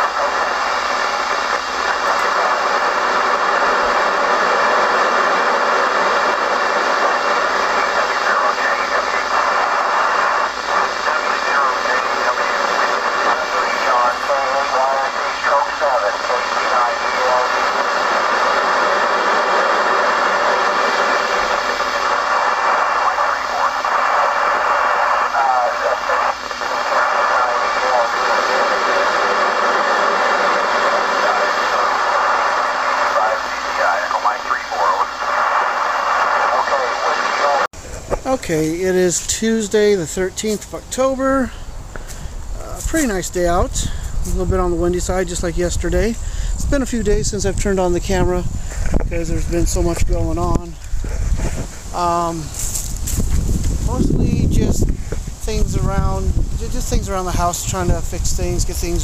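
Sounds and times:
faint voice over radio: 0.0 - 51.2
radio static noise: 0.0 - 59.0.

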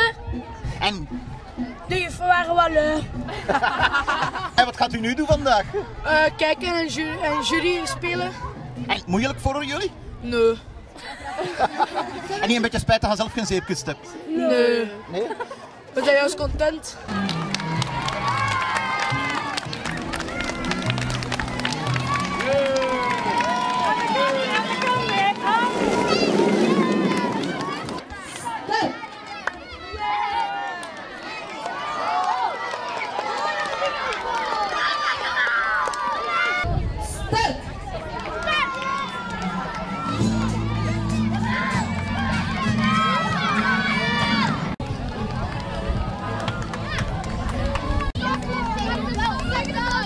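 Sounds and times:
people clapping: 17.1 - 29.8, 30.4 - 36.6, 38.0 - 40.6, 44.8 - 50.0
children shouting and cheering: 17.1 - 36.9, 37.8 - 50.0.

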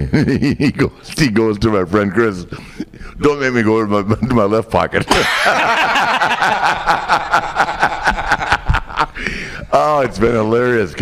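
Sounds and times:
men laughing hard: 5.1 - 10.2.

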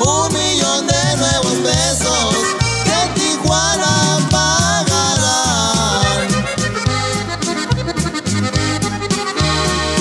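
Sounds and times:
accordion melody: 0.0 - 10.0
bass line: 0.0 - 10.0
strummed rhythm: 0.0 - 10.0.

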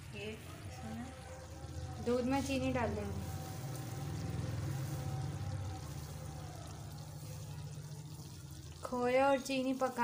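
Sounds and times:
gas stove burners rumbling: 0.1 - 10.0.

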